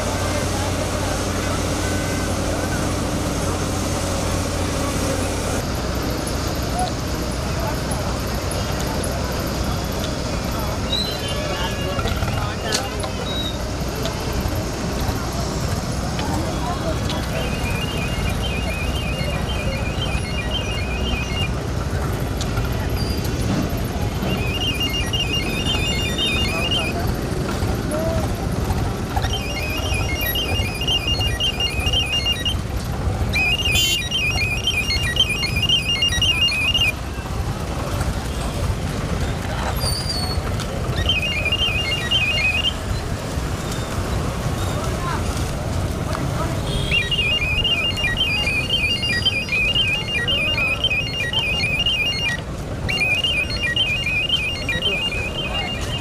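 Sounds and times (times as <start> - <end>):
street traffic rumble: 0.0 - 56.0
high pulsing electronic warble: 16.5 - 21.7, 24.0 - 27.4.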